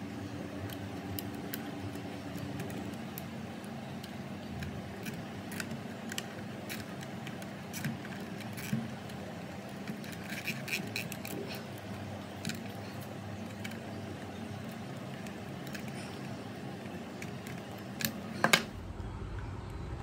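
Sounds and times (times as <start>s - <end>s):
steady low hum: 0.0s - 20.0s
cable tie clicks and rustles: 0.6s - 18.7s.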